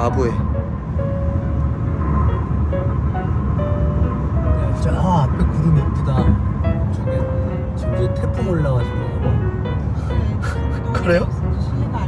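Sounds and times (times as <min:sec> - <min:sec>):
road and tyre rumble: 0:00.0 - 0:12.0
soft background music: 0:00.0 - 0:12.0.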